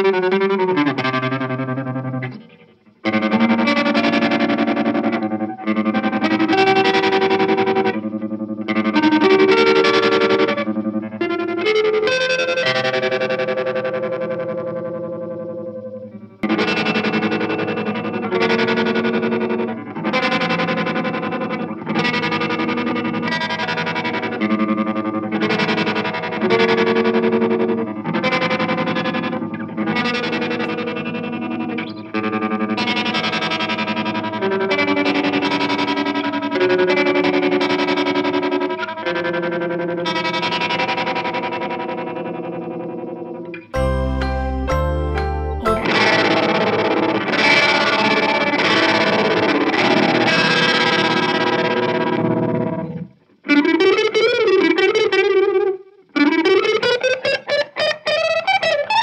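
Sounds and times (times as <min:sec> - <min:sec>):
electric guitar chords with tremolo: 0:00.0 - 0:59.0.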